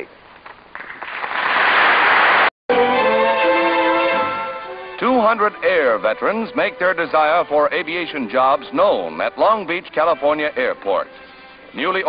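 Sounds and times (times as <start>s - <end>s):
audience applause: 0.7s - 2.5s.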